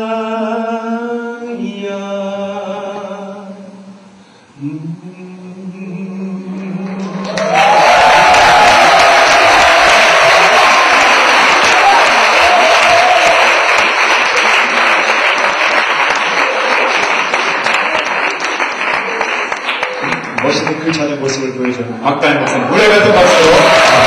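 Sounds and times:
audience applauding: 0:07.0 - 0:21.8, 0:22.7 - 0:24.0.

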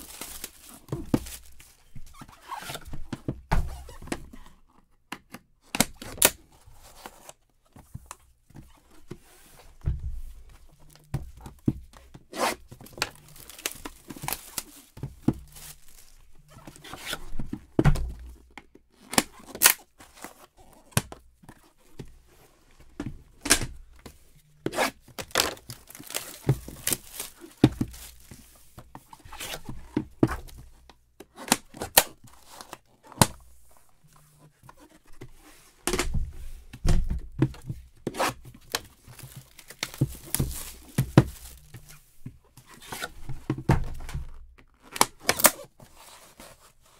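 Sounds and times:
plastic wrapping tearing and crinkling: 0:00.0 - 0:02.8, 0:12.4 - 0:17.3, 0:24.7 - 0:28.5, 0:38.2 - 0:42.0.

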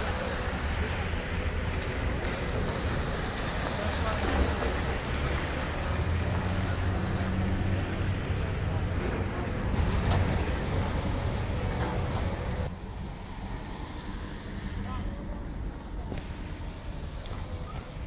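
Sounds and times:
tyres hissing on wet pavement: 0:00.0 - 0:08.0, 0:12.5 - 0:15.4
low engine rumble: 0:00.0 - 0:18.0.

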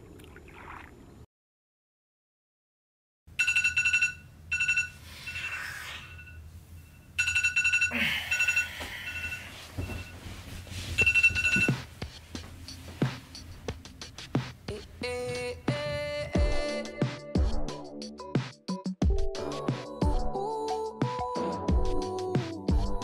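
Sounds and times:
smartphone alarm ringtone: 0:03.4 - 0:10.1, 0:11.0 - 0:11.9
bedding rustling: 0:08.8 - 0:16.1.

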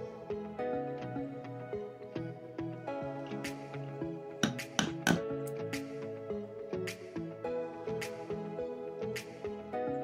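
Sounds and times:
instrumental background music: 0:00.0 - 0:10.0
mallet tapping knife spine: 0:04.4 - 0:05.2.

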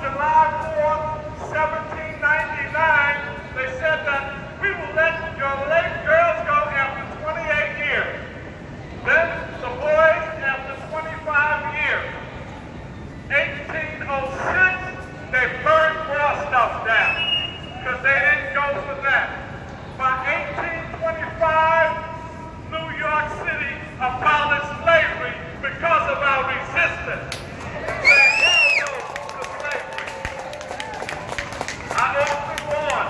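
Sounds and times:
low background noise: 0:00.0 - 0:33.0.

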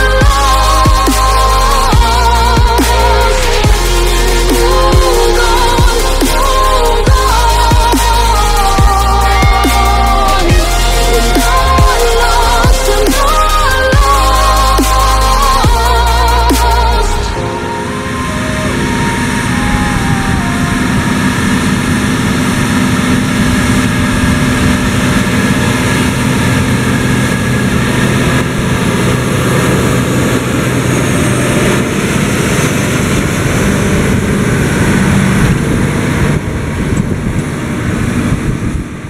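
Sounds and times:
tractor diesel engine under load: 0:00.0 - 0:39.0.

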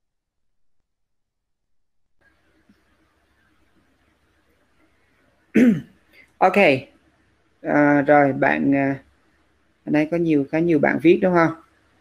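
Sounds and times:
man clearing throat: 0:05.5 - 0:06.0
man speaking: 0:07.6 - 0:09.0, 0:09.9 - 0:11.7.

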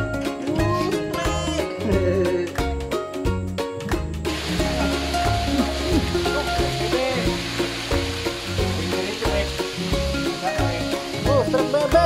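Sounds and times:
music with repeating bass line: 0:00.1 - 0:12.0
even hiss: 0:04.2 - 0:12.0.

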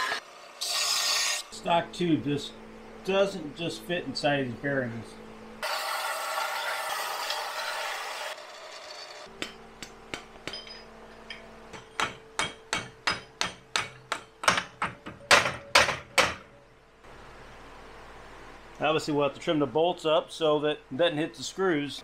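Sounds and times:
belt sander grinding steel: 0:05.6 - 0:09.3
hammer tapping steel shaft: 0:09.3 - 0:16.5.

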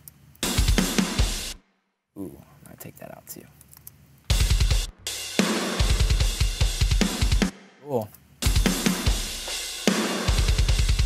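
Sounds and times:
metal drum kit playing: 0:00.4 - 0:01.6, 0:04.3 - 0:07.6, 0:08.4 - 0:11.0.

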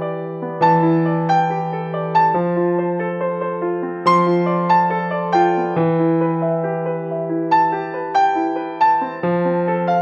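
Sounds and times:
slow piano-like notes: 0:00.0 - 0:10.0.

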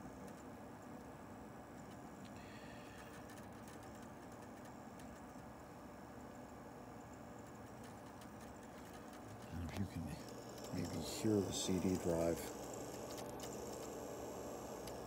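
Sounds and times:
cd drive whirring: 0:00.0 - 0:15.0.

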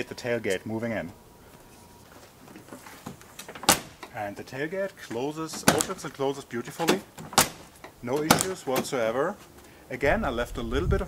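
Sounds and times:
tailgate slamming shut: 0:02.6 - 0:04.2, 0:05.4 - 0:06.2, 0:06.8 - 0:09.0.

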